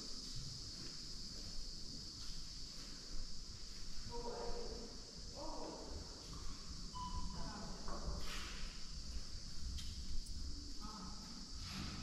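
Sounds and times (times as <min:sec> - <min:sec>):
steady high hiss: 0:00.0 - 0:12.0.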